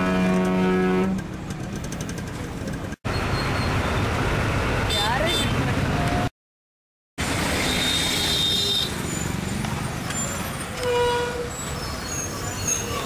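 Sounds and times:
vehicle horn honk: 0:00.0 - 0:01.2, 0:10.8 - 0:11.5
congested road traffic: 0:00.0 - 0:06.3, 0:07.2 - 0:13.0.

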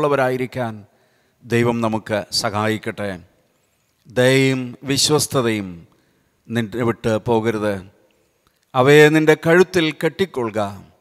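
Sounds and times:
man praying into a microphone: 0:00.0 - 0:03.4, 0:04.0 - 0:11.0.

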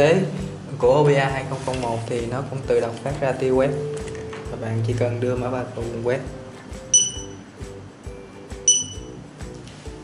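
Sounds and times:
background music: 0:00.0 - 0:10.0
barcode scanner beep: 0:06.9 - 0:07.4, 0:08.6 - 0:09.2.

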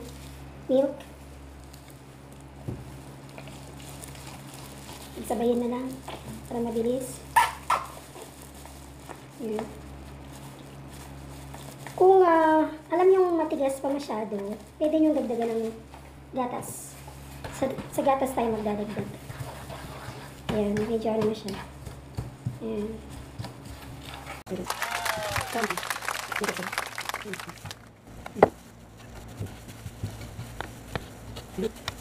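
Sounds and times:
wooden spoon stirring thick mixture: 0:01.1 - 0:07.1, 0:13.8 - 0:24.5, 0:28.4 - 0:32.0.

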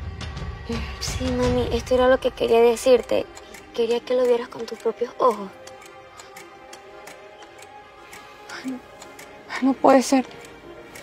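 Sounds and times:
sustained low music tones: 0:00.0 - 0:11.0
clock-like ticking beat: 0:00.3 - 0:11.0.

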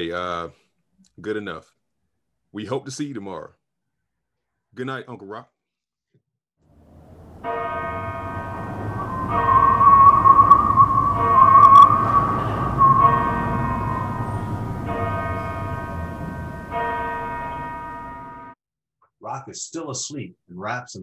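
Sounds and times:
large bell tolling: 0:06.9 - 0:18.6
wavering higher tone: 0:07.0 - 0:18.5.

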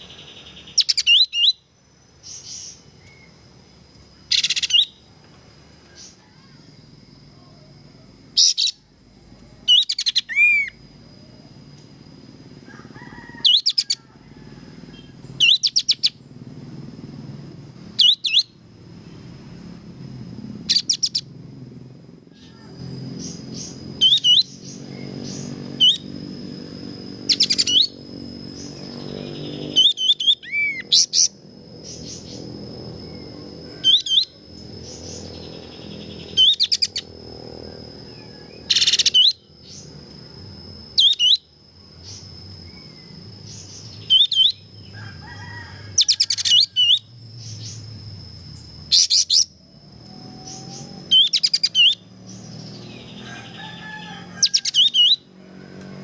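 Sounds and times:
bird chirps and trills: 0:00.0 - 0:05.1, 0:07.4 - 0:11.5, 0:13.2 - 0:14.0, 0:14.9 - 0:16.5, 0:17.9 - 0:18.6, 0:20.4 - 0:21.4, 0:22.3 - 0:45.0, 0:45.9 - 0:49.6, 0:50.2 - 0:55.3.

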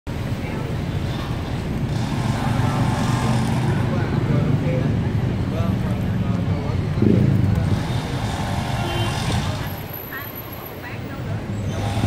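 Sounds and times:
city traffic rumble: 0:00.1 - 0:12.0
faint voices: 0:00.1 - 0:12.0.

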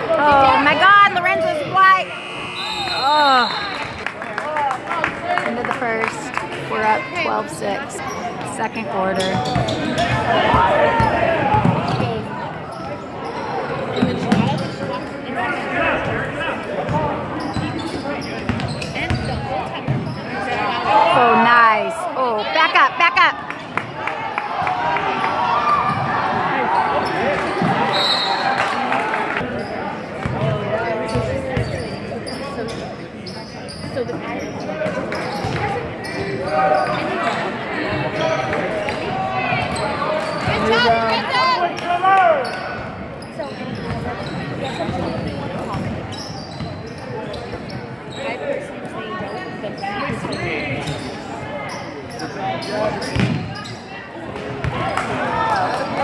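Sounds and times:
echoing voices of players and crowd: 0:00.0 - 0:56.0.

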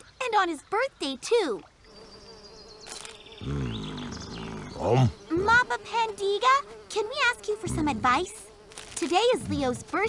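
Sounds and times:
deep voice humming: 0:03.4 - 0:05.6
person saying um: 0:07.6 - 0:08.3, 0:09.4 - 0:10.0.

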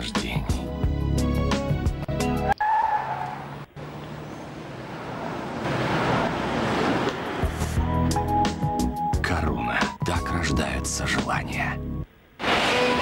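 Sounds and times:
rushing noise: 0:04.4 - 0:07.9.

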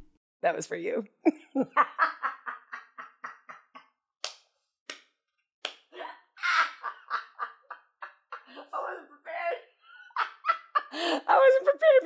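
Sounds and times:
woman laughing hard: 0:01.2 - 0:03.8, 0:06.4 - 0:08.9, 0:09.9 - 0:11.4.

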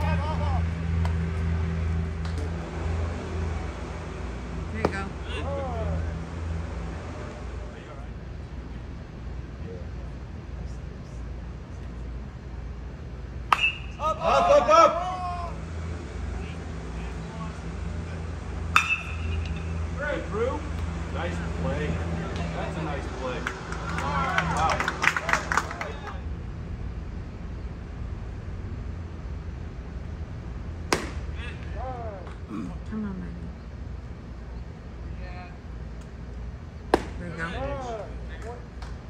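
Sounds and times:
ballpark background noise: 0:00.0 - 0:39.0
metal bat hitting ball: 0:13.5 - 0:14.0, 0:18.7 - 0:19.7, 0:30.9 - 0:31.3, 0:36.9 - 0:37.2
person shouting: 0:14.0 - 0:15.6
baseball popping into leather mitt: 0:30.9 - 0:31.3, 0:36.9 - 0:37.2.

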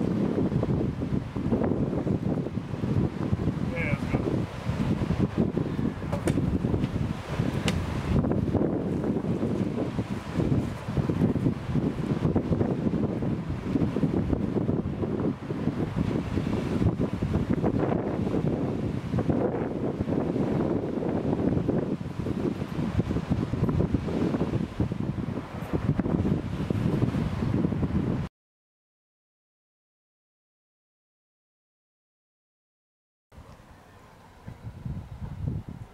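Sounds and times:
wind buffeting microphone: 0:00.0 - 0:28.3, 0:33.4 - 0:35.9.

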